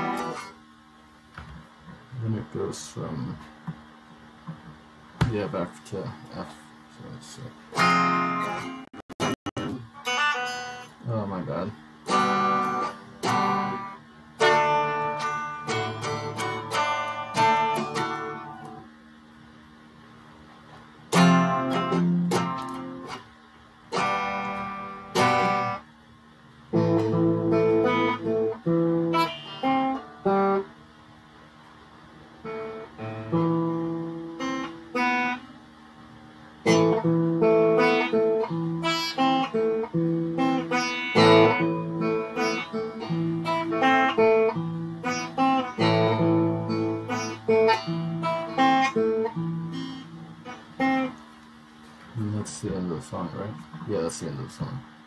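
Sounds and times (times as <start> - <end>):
electric guitar playing: 0.0 - 0.7, 7.0 - 18.9, 20.4 - 31.0, 31.6 - 52.4.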